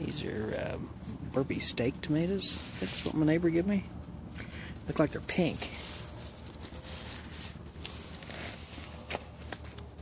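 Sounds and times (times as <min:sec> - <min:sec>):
plant leaves rustling: 0:04.4 - 0:10.0.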